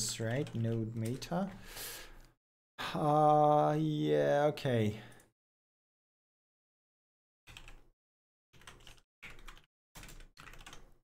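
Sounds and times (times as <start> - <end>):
computer keyboard typing: 0.0 - 1.4, 7.5 - 7.9, 8.6 - 11.0.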